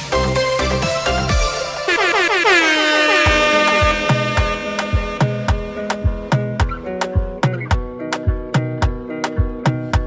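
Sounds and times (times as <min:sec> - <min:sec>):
dance music drum beat: 0:01.4 - 0:10.0
horn sound effect falling in pitch: 0:01.5 - 0:06.8.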